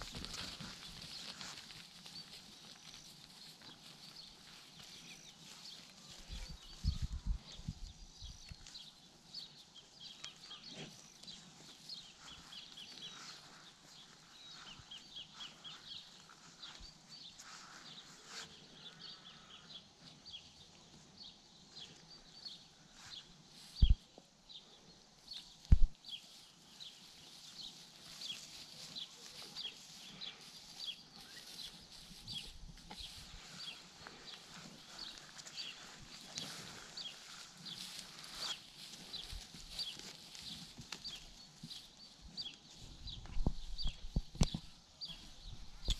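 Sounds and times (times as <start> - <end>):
cattle moving and grazing: 0.0 - 45.9
small birds chirping: 0.0 - 45.9.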